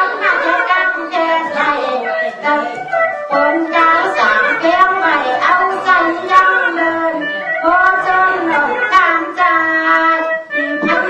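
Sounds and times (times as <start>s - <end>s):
instrumental accompaniment: 0.0s - 11.0s
person singing wavering melody: 0.0s - 11.0s.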